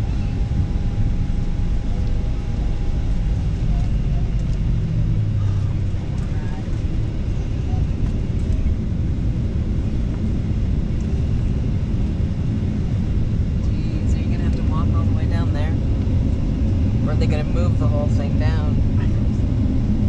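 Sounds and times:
airliner engine rumble: 0:00.0 - 0:20.0
faint voices: 0:01.9 - 0:08.8.

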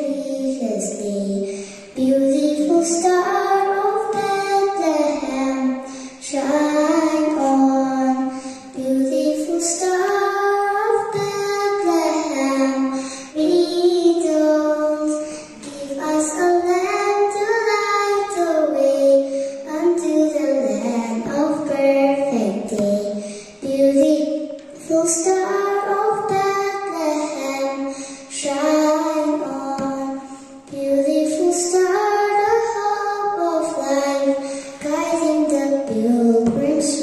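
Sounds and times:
girl singing into a microphone: 0:00.0 - 0:37.0.

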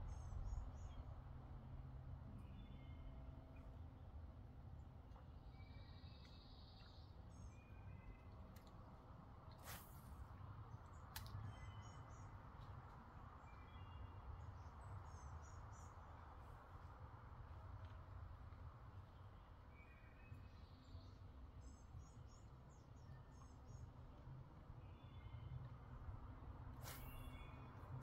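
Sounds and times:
small birds chirping: 0:26.8 - 0:28.0.

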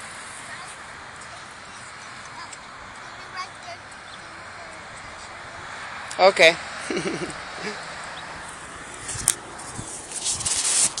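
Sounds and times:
scraping against microphone: 0:08.9 - 0:11.0.

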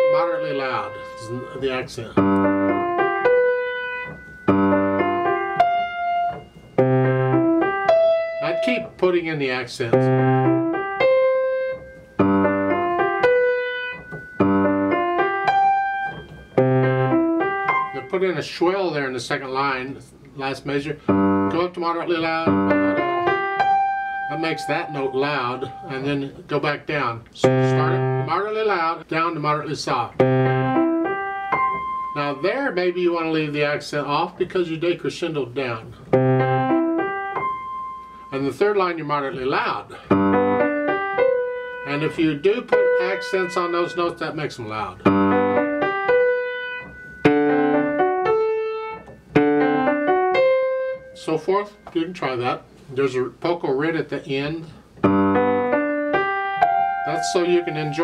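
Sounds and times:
slow grand piano passage: 0:00.0 - 0:18.3, 0:20.9 - 0:26.5, 0:27.4 - 0:28.4, 0:30.0 - 0:33.7, 0:35.8 - 0:51.8, 0:54.6 - 0:58.0.

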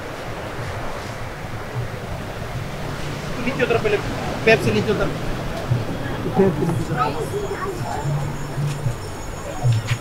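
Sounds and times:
sea surf washing on rocks: 0:00.0 - 0:08.4
wind on microphone: 0:00.0 - 0:10.0.

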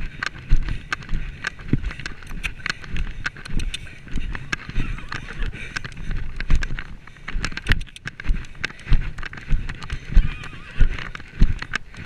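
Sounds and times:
horse hoofbeats on turf: 0:00.0 - 0:12.0
light clicks: 0:00.2 - 0:10.0.

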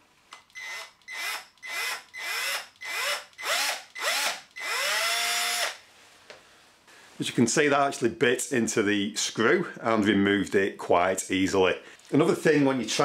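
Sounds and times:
small drill motor whirring: 0:00.5 - 0:05.8
drill bit biting into screw: 0:00.6 - 0:05.8.

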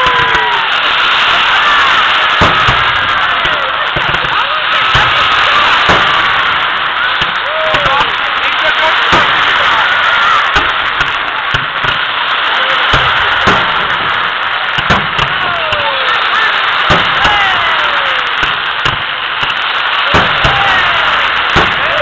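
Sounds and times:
fireworks whistles falling in pitch: 0:00.0 - 0:08.3, 0:09.0 - 0:22.0
fireworks bangs: 0:00.0 - 0:22.0.

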